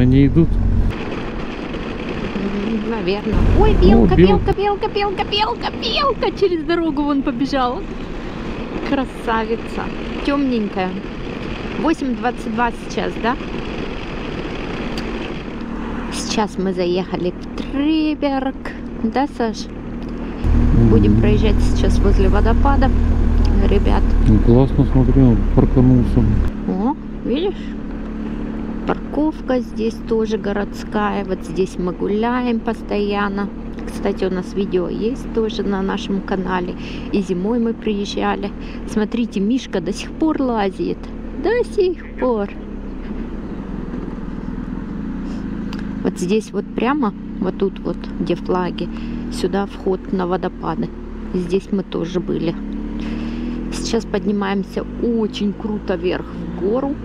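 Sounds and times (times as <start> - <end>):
motorcycle engine running: 0.0 - 57.0
wind and road noise: 0.0 - 57.0
low voice humming: 20.4 - 22.6, 24.2 - 26.5.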